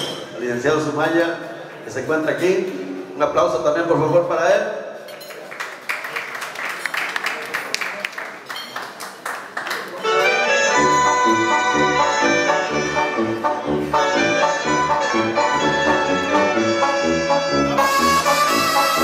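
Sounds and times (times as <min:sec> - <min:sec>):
small group clapping: 0:05.2 - 0:10.0
brass-led dance music over loudspeaker: 0:10.6 - 0:19.0.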